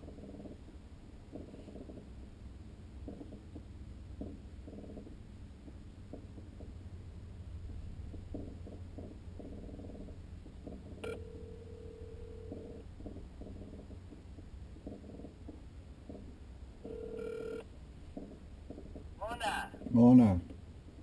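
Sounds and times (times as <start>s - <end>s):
low hum: 0.0s - 21.0s
phone ringback tone: 11.0s - 12.8s, 16.8s - 17.6s.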